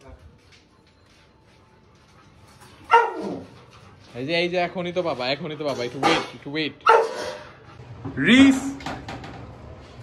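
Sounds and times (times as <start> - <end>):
dog barking: 2.9 - 3.4, 6.8 - 7.4.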